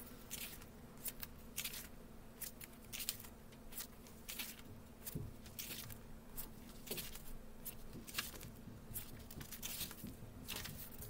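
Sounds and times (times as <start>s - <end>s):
book pages being turned: 0.3s - 11.0s.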